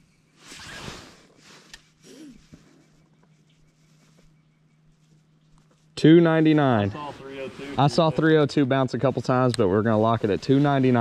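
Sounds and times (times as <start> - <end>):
faint low hum: 0.0 - 11.0
clothing and gloves rustling: 0.3 - 6.0.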